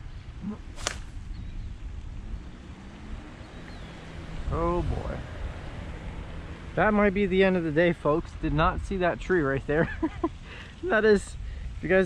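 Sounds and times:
wind rumble on microphone: 0.0s - 12.0s
fishing rod swishing: 0.7s - 1.2s.

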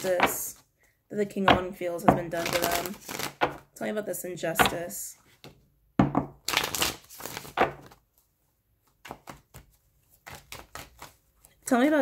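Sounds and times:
cards being shuffled: 2.1s - 3.7s, 6.4s - 8.0s, 8.8s - 11.6s.

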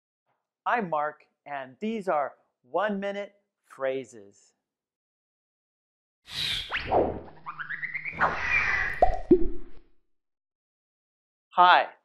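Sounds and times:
downward-dropping blips: 9.0s - 9.7s.

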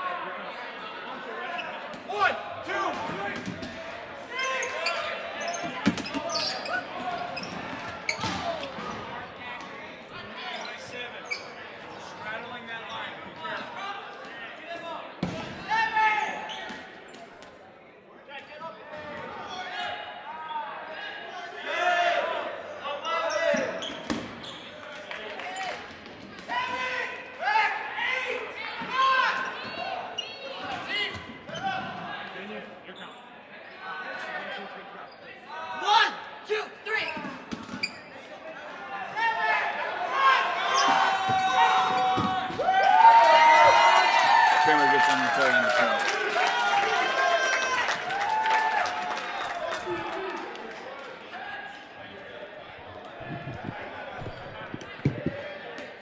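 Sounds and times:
dodgeballs smacking and bouncing: 7.5s - 9.7s, 15.2s - 15.7s
players shouting: 39.0s - 50.6s.

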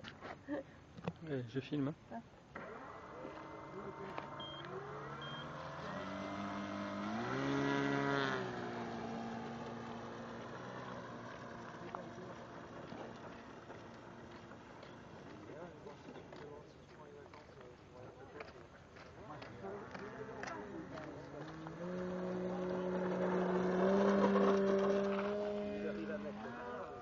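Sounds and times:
model plane electric motor whine: 2.6s - 15.2s, 21.2s - 27.0s.

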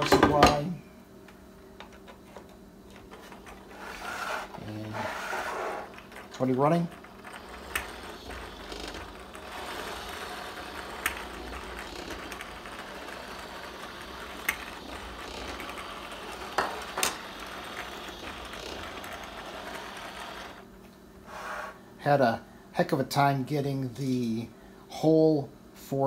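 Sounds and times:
low motor hum: 1.9s - 20.7s
plastic gears whirring and clattering: 2.9s - 20.6s.

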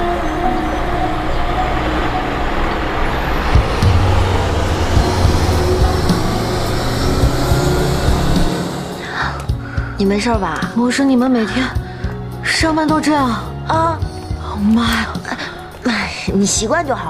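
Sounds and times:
bus engine running: 0.0s - 17.0s
road noise: 0.0s - 17.0s.

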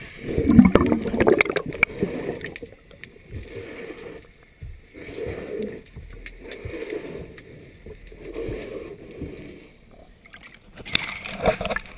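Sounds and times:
muffled underwater swishing: 0.0s - 11.9s
water splashes: 0.0s - 11.9s.

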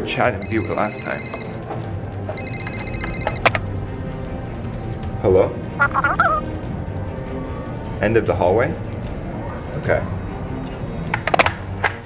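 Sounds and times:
background music: 0.0s - 12.0s
phone ringing electronic tone: 0.4s - 1.6s, 2.4s - 3.6s, 5.8s - 6.4s.

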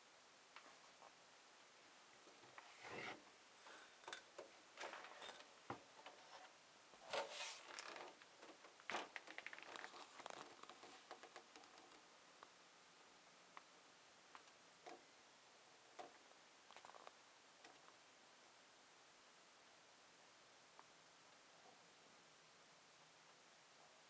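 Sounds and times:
handling rustles and scrapes: 2.4s - 4.2s, 4.8s - 11.9s
small ticks: 16.0s - 18.0s.

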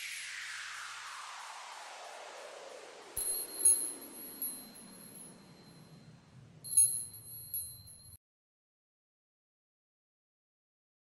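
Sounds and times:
high glassy chimes: 3.2s - 6.0s, 6.7s - 8.2s.

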